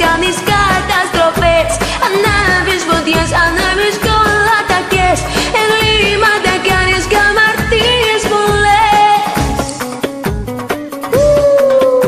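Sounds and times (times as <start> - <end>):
woman singing: 0.0 - 9.8
pop backing track with beat: 0.0 - 12.0.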